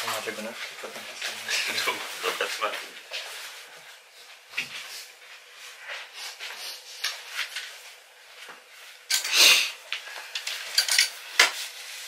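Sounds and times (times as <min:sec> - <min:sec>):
clothes hangers clinking on a rail: 0:10.7 - 0:11.2.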